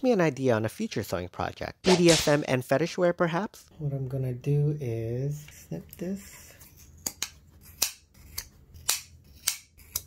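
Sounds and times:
scissors snipping: 0:07.0 - 0:10.0.

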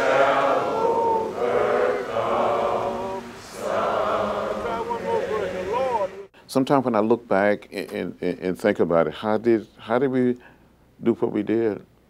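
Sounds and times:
crowd singing slowly: 0:00.0 - 0:06.3.

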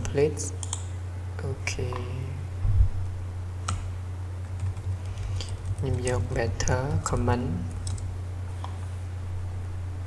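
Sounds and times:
low electrical hum: 0:00.0 - 0:10.0
computer keyboard typing: 0:04.4 - 0:08.8.

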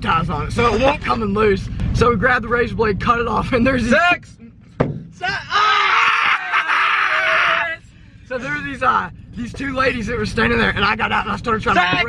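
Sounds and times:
young man screaming: 0:05.2 - 0:07.8.

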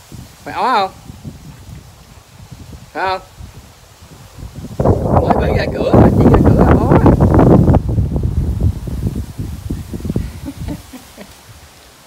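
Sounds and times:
wind buffeting microphone: 0:00.0 - 0:11.8.

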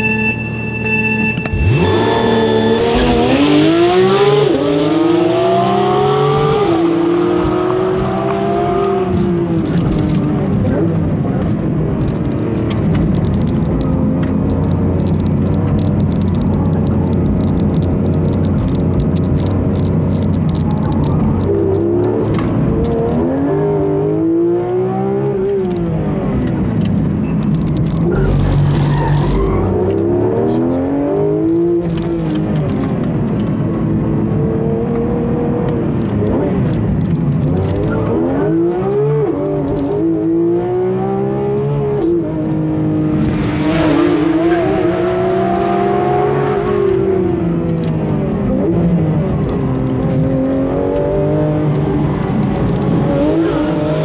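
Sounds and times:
sports car engine revving through gears: 0:01.5 - 0:54.0.

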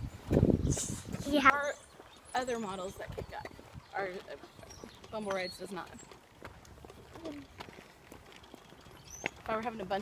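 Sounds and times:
wind buffeting microphone: 0:00.0 - 0:10.0
children talking: 0:00.7 - 0:06.1, 0:07.0 - 0:07.8.

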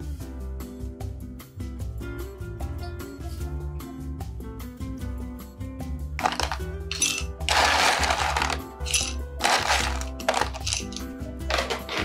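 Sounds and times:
background music: 0:00.0 - 0:12.0
ice cubes clattering: 0:06.2 - 0:12.0.

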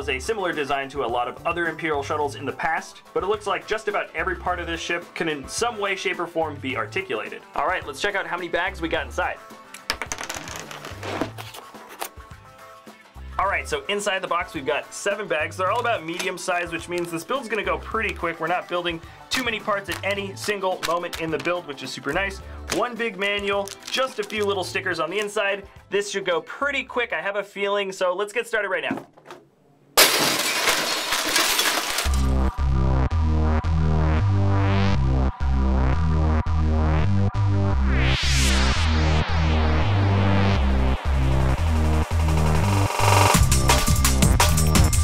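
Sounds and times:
background music with bass: 0:00.0 - 0:27.0, 0:31.9 - 0:45.0
plastic bags rustling: 0:23.6 - 0:24.6, 0:30.2 - 0:32.4
electronic music with deep bass: 0:32.3 - 0:45.0.

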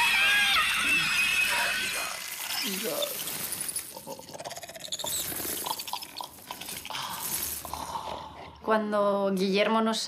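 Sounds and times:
creature chittering and clicking: 0:00.4 - 0:07.8.

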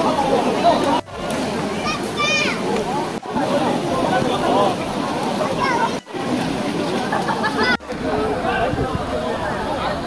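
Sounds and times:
crowd chatter: 0:00.0 - 0:10.0
stream water sloshing: 0:00.0 - 0:10.0.

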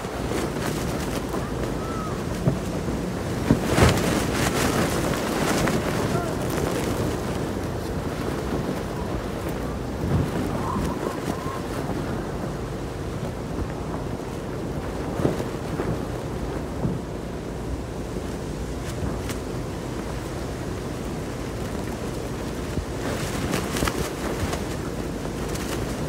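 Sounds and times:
strong wind buffeting microphone: 0:00.0 - 0:26.0.

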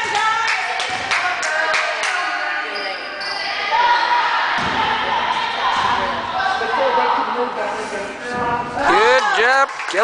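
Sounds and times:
spectators' voices: 0:00.0 - 0:10.0.

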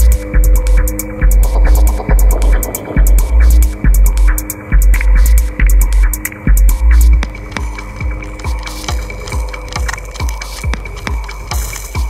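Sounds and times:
electronic club music: 0:00.0 - 0:12.0.

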